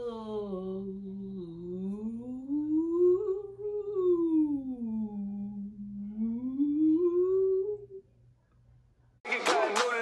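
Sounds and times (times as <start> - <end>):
woman humming rising note: 0.0 - 8.0.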